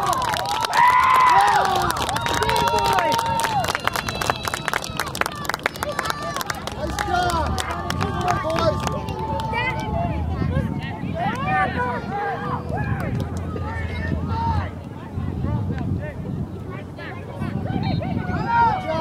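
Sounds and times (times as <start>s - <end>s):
people talking and calling out: 0.0s - 19.0s.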